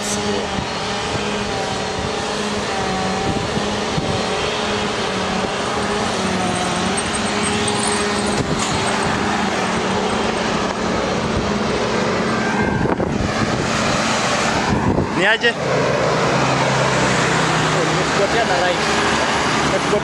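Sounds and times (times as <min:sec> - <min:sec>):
traffic rush: 0:00.0 - 0:20.0
vehicle engine droning: 0:00.0 - 0:20.0.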